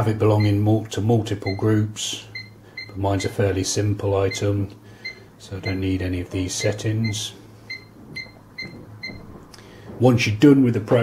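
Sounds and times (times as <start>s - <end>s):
cash register beeps: 1.4s - 3.4s, 4.2s - 9.2s.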